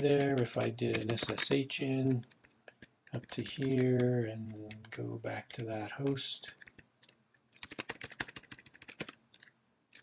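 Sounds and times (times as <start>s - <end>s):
computer keyboard typing: 0.0s - 1.6s, 2.2s - 10.0s.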